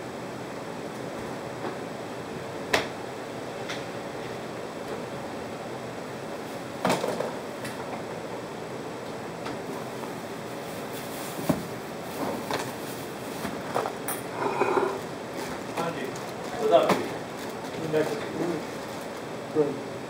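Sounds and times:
steady background hiss: 0.0s - 20.0s
towel and packet rustling: 10.6s - 14.0s.

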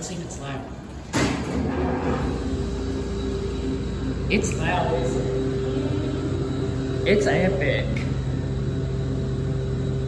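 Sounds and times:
elevator motor humming: 0.9s - 10.0s.

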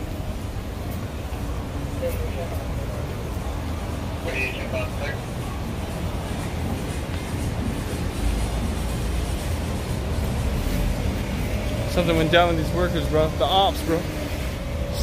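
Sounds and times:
faint voices: 0.0s - 15.0s
low rumble of traffic: 0.0s - 15.0s.

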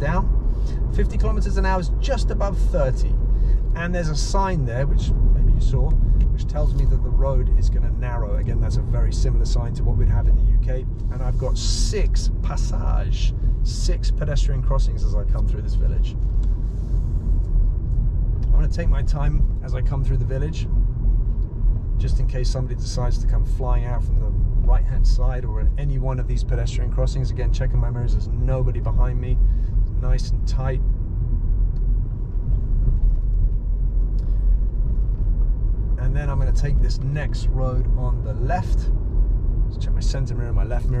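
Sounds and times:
car engine and tyres rumbling: 0.0s - 41.0s.

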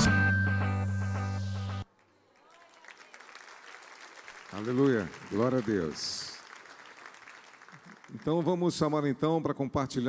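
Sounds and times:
audience applause: 2.3s - 8.5s.

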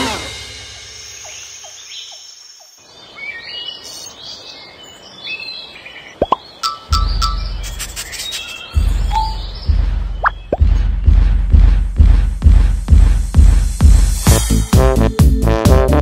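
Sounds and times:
soft forest hiss: 0.0s - 6.6s
birds chirping: 0.0s - 11.6s
rising whistles and clicks: 6.2s - 10.7s
low heavy musical beat: 6.9s - 16.0s.

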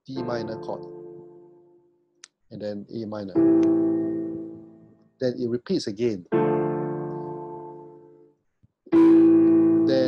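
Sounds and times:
digital piano chord ringing: 0.0s - 1.8s, 3.0s - 5.5s, 6.1s - 8.2s, 8.9s - 10.0s.

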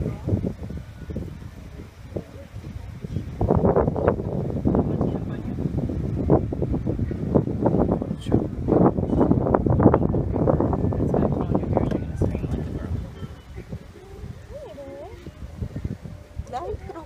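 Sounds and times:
wind on microphone: 0.0s - 17.0s
people talking: 1.8s - 3.4s, 4.7s - 5.7s, 9.0s - 15.4s, 16.4s - 17.0s.

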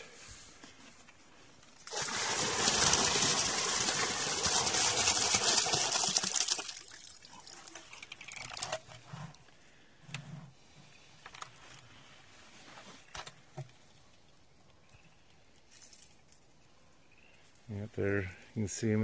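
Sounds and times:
water drips and splashes: 1.8s - 8.8s
water pouring into pond: 1.8s - 9.0s.

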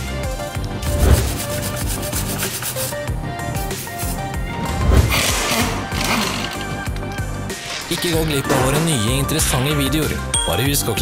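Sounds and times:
wire brush scrubbing metal: 0.8s - 3.1s.

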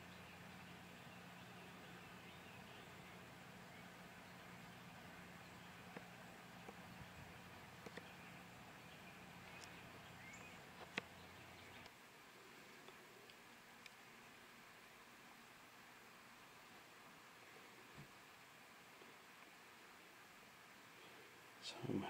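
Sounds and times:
low hum: 0.0s - 22.0s.

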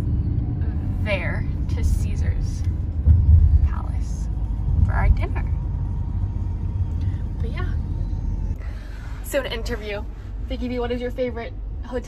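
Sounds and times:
car interior rumble: 0.0s - 12.0s.

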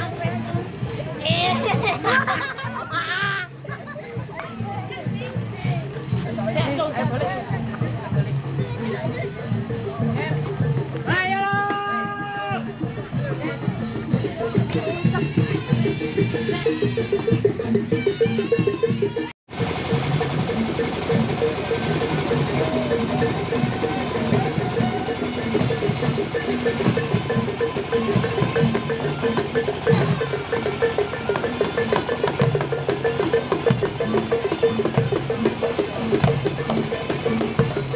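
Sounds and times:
hand drum: 0.0s - 37.9s
knobbed gongs ringing: 19.6s - 37.9s
bass drum: 20.0s - 37.9s.

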